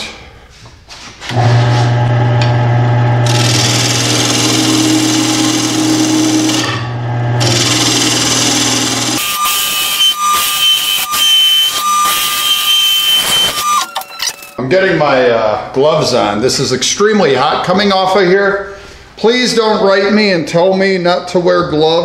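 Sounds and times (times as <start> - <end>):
wood lathe hum: 1.3 - 14.5
high steady whine: 9.1 - 14.6.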